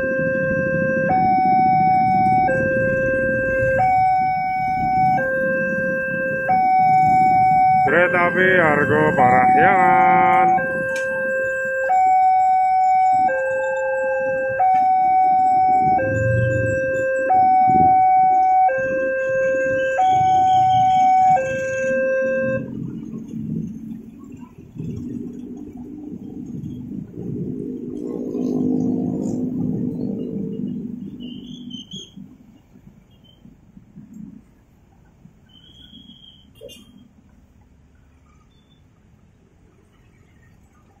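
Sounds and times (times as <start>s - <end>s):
level crossing two-tone alarm: 0.0s - 22.6s
vehicle passing: 0.0s - 31.7s
road traffic engine noise: 0.0s - 41.0s.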